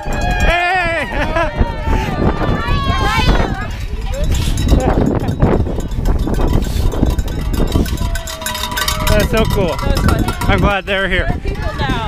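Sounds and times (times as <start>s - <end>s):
wind rumbling on microphone: 0.0s - 12.0s
rapid jingling: 3.2s - 12.0s.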